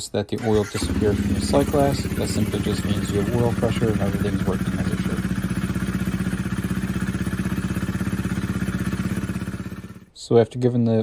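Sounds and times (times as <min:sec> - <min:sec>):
motorcycle engine idling: 0:00.4 - 0:10.1.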